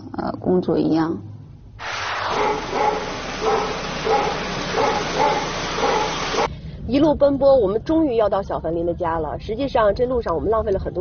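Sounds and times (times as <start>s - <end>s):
steady hiss: 1.8s - 6.5s.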